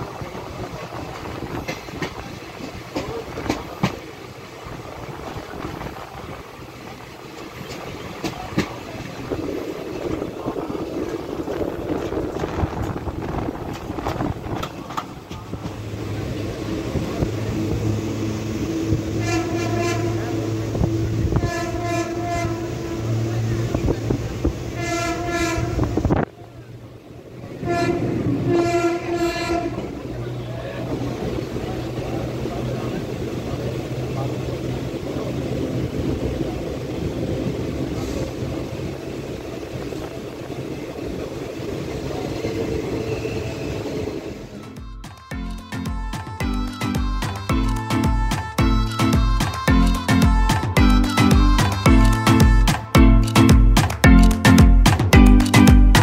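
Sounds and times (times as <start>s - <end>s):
wind at open door: 0.0s - 19.2s, 22.4s - 24.8s, 25.5s - 28.6s
train wheels rumbling on rails: 0.0s - 56.0s
train horn blasts: 18.7s - 23.4s, 24.7s - 26.1s, 27.6s - 30.0s.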